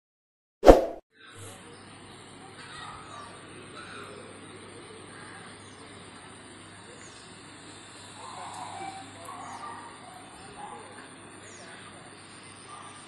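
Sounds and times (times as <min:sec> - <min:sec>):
loud pop sound effect: 0:00.6 - 0:01.0.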